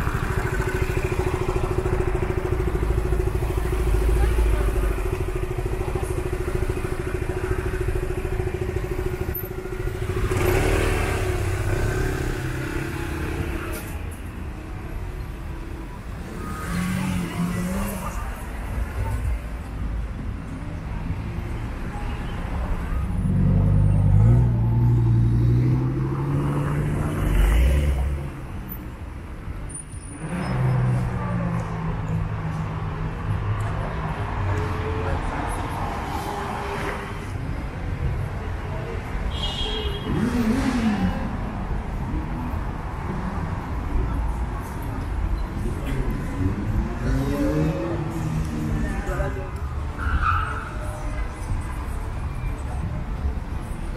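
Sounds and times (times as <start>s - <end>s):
low traffic rumble: 0.0s - 53.9s
vehicle engine revving: 8.2s - 13.6s
cars driving past: 22.8s - 28.7s.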